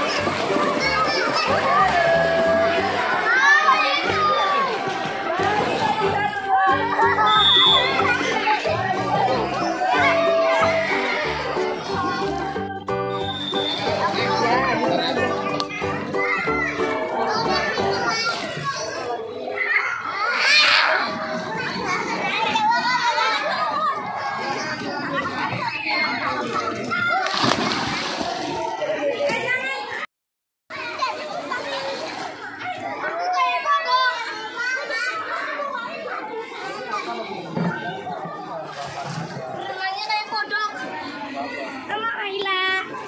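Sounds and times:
children's high-pitched shouts: 0.0s - 5.0s, 6.3s - 12.5s, 15.5s - 27.3s, 32.6s - 37.2s
children calling out and playing: 0.0s - 30.1s, 30.7s - 43.0s
background music: 0.1s - 3.3s, 7.8s - 18.1s.

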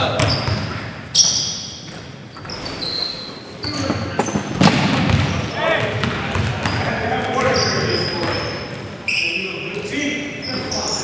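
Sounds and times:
basketball bouncing: 0.0s - 0.9s, 3.9s - 7.6s
sneakers squeaking on court: 0.0s - 11.0s.

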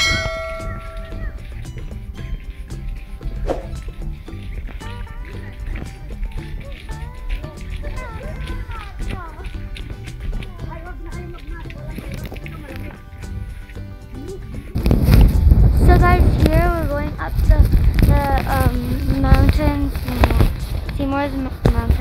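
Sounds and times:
background music: 0.0s - 22.0s
wind buffeting microphone: 0.0s - 22.0s
person speaking: 4.8s - 13.4s, 15.8s - 22.0s.

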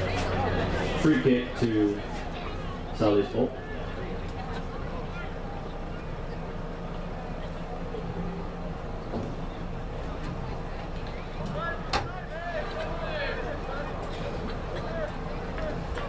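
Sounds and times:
distant shouts: 0.0s - 16.0s.

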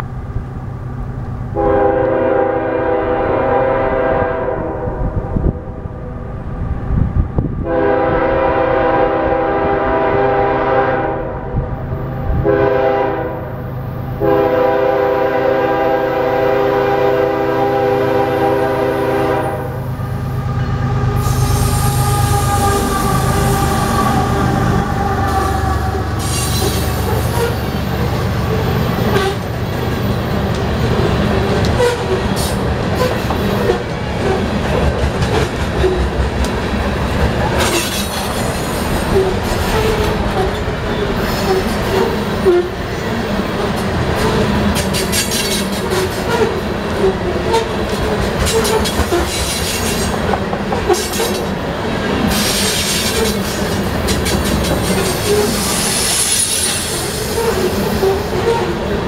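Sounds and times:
locomotive rumbling past: 0.0s - 59.0s
locomotive air horn blasts: 1.6s - 5.2s, 7.6s - 11.7s, 12.3s - 13.6s, 14.2s - 27.7s, 29.1s - 29.4s, 31.8s - 32.2s
freight cars rolling rumble: 13.6s - 59.0s
rail clatter: 19.0s - 59.0s.

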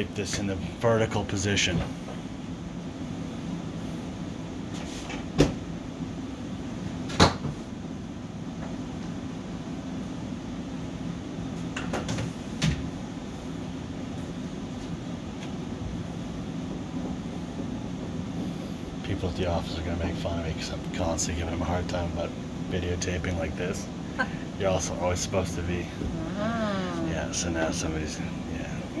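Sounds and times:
equipment and ventilation hum: 0.0s - 29.0s.

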